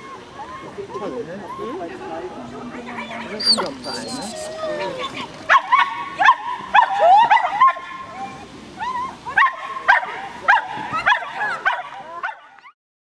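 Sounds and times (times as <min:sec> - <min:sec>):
small dog yipping: 0:03.0 - 0:08.1.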